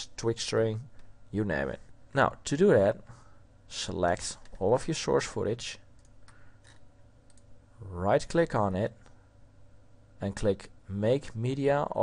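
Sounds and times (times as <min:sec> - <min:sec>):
computer mouse clicks: 0:06.0 - 0:07.5.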